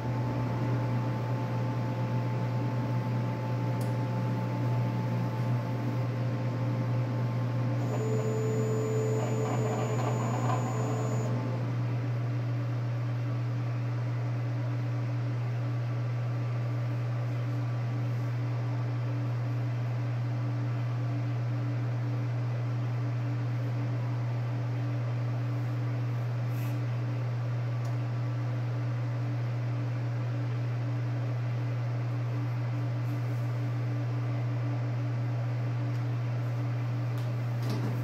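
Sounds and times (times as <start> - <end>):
printer fans humming: 0.0 - 12.8.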